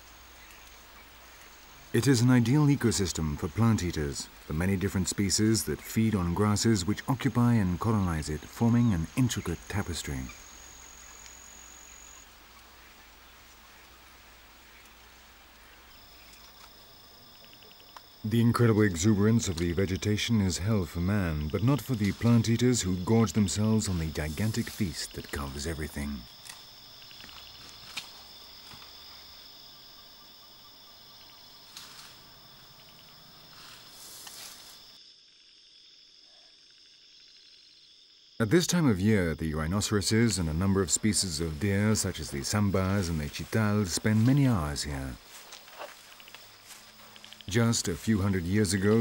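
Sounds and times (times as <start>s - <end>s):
faint hiss: 0.0s - 35.0s
crickets chirping: 0.0s - 49.0s
insects trilling: 0.0s - 49.0s.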